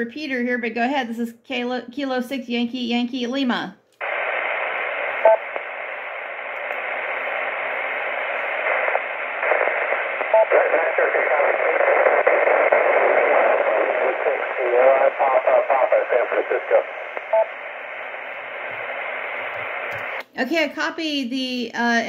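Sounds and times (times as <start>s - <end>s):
radio hiss: 4.0s - 20.2s
short radio beep: 5.2s - 5.6s, 10.2s - 11.7s
weak voice over radio: 10.4s - 17.3s.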